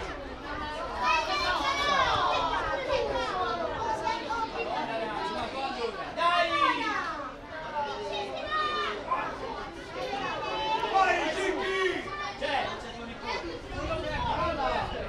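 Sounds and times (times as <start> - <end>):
children shouting: 0.0 - 14.8
background chatter: 0.0 - 15.0.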